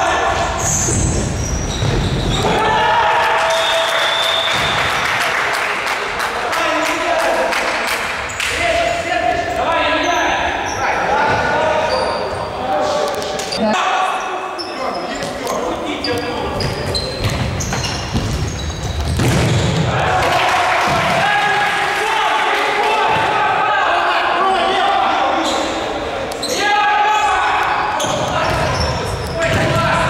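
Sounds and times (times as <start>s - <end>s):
players shouting: 2.3s - 5.5s, 19.5s - 30.0s.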